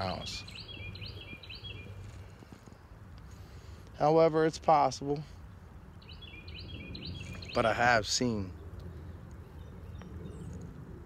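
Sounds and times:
songbird chirping: 0.0 - 10.8.

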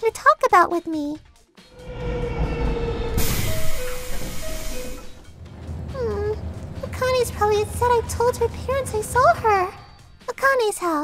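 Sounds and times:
bullet train rushing past: 1.7 - 10.3.

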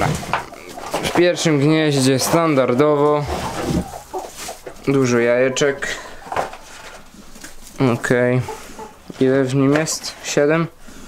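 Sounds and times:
hens calling: 0.0 - 11.0.

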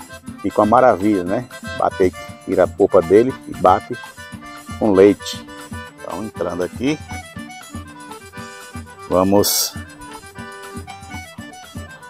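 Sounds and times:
instrumental background music: 0.0 - 12.0.

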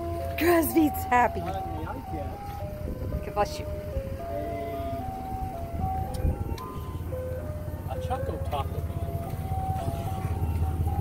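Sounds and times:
ice cream truck chime music: 0.0 - 11.0
steady low rumble: 0.0 - 11.0.

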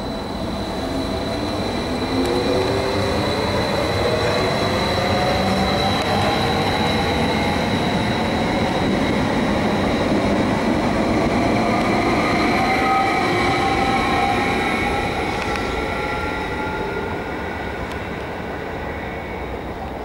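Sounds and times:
high steady whine: 0.0 - 20.0
train wheels rumbling on rail: 0.0 - 20.0.

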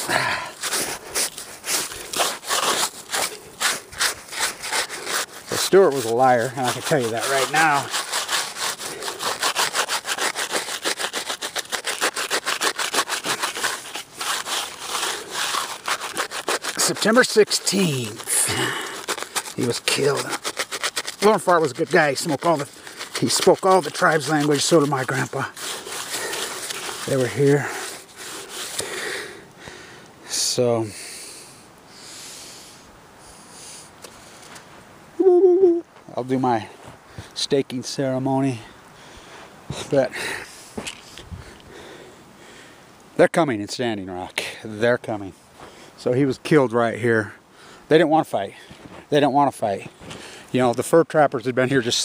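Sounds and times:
man breathing: 0.0 - 2.1, 27.8 - 30.1, 30.8 - 34.4, 39.0 - 42.9, 50.1 - 50.5
hand brushing snow off plaque: 0.0 - 29.4.

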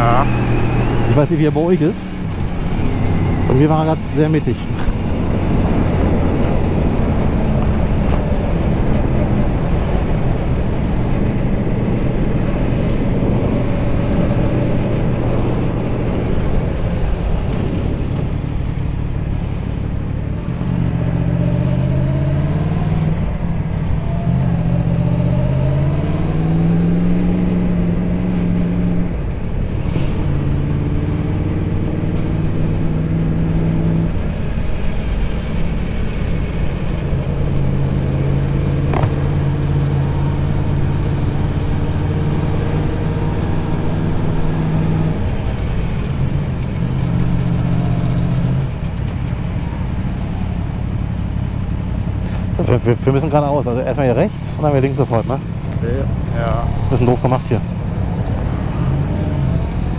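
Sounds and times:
motorcycle engine accelerating: 0.0 - 59.9
road and wind noise: 0.0 - 59.9.

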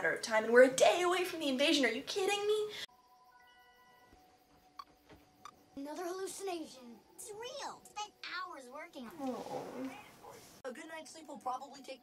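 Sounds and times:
cartoon dialogue from tv: 5.8 - 12.0.

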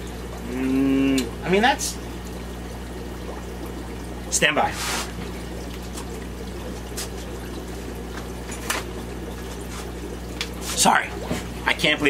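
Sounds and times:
low steady hum: 0.0 - 12.0
water trickling and splashing: 0.0 - 12.0.

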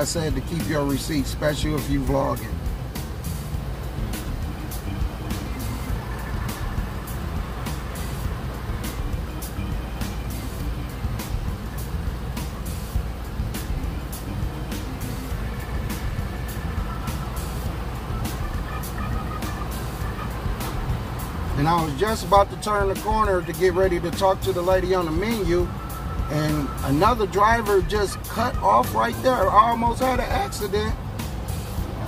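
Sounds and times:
engine idling: 0.0 - 32.0
music with quick beat: 1.5 - 32.0.

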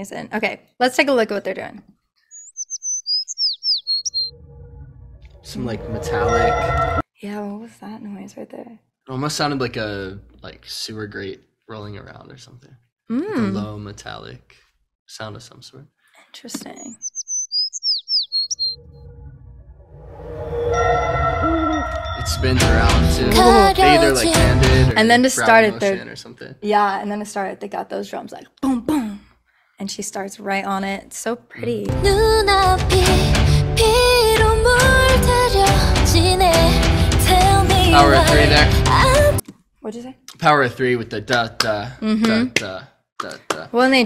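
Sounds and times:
high whistled bird chirps: 2.2 - 4.4, 16.9 - 19.0
low rumble: 4.3 - 7.0, 18.8 - 25.0
sustained music chords: 20.8 - 25.8.

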